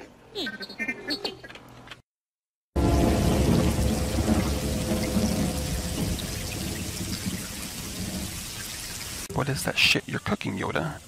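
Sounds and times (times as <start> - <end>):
low rumble: 2.8 - 8.6
rain-like wash of noise: 2.8 - 9.3.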